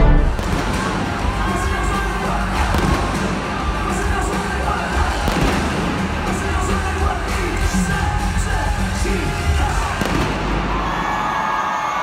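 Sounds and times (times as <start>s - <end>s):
pyrotechnic bangs: 0.0s - 7.0s, 9.7s - 10.8s
live pop concert music: 0.0s - 12.0s.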